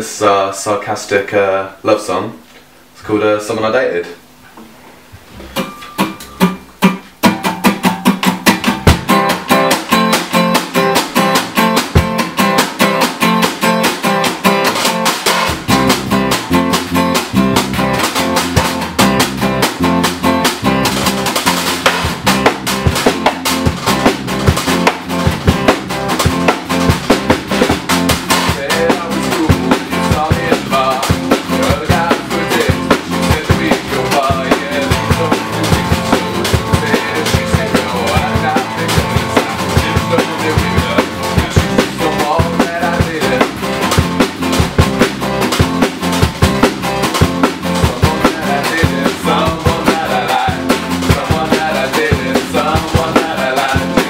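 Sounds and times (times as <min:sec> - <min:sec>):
bass guitar: 0:00.0 - 0:54.0
drum kit beat: 0:04.5 - 0:54.0
strummed acoustic guitar: 0:04.6 - 0:54.0.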